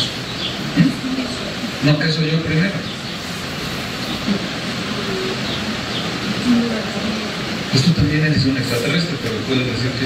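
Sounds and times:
steady rushing background noise: 0.0s - 10.0s.

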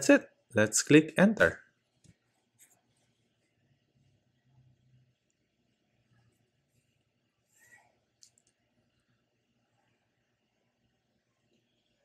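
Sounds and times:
faint clicks: 8.2s - 8.6s.

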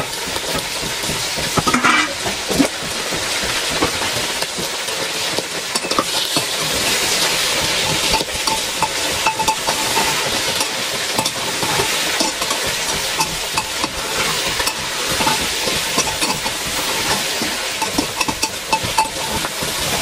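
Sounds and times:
meat sizzling in a pot: 0.0s - 20.0s
metal spatula scraping a pot: 0.4s - 20.0s.

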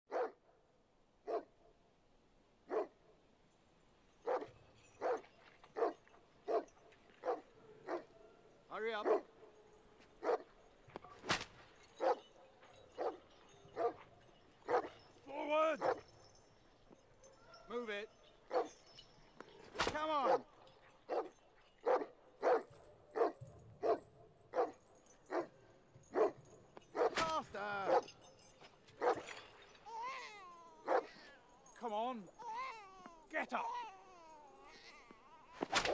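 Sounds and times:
dog barking: 0.1s - 0.4s, 1.2s - 1.5s, 2.7s - 3.0s, 4.2s - 5.2s, 5.8s - 9.4s, 10.2s - 10.5s, 12.0s - 12.3s, 13.0s - 13.2s, 13.8s - 14.0s, 14.6s - 15.0s, 15.8s - 16.0s, 18.5s - 18.8s, 21.1s - 27.2s, 29.0s - 29.3s, 30.8s - 31.2s.

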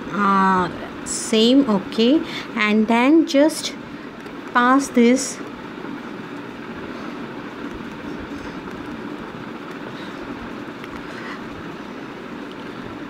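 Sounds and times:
background hum and hiss: 0.0s - 13.0s.

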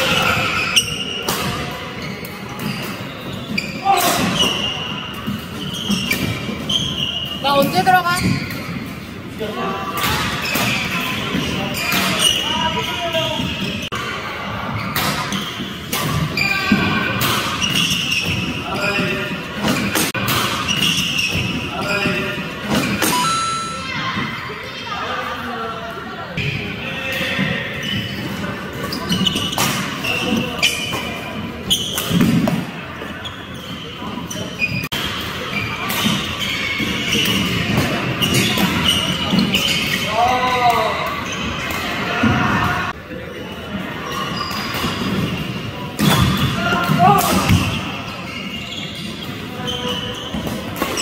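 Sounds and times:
court shoes squeaking: 0.0s - 9.3s, 9.9s - 14.1s, 14.7s - 24.7s, 26.4s - 42.6s, 43.2s - 51.0s.

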